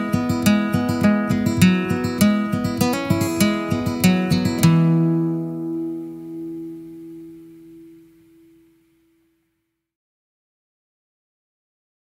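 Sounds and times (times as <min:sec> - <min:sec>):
acoustic guitar chord ringing: 0:00.0 - 0:09.5.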